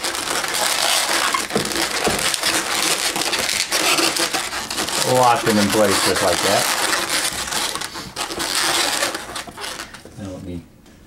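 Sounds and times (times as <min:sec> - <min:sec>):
balloons rubbing and squeaking: 0:00.0 - 0:10.3.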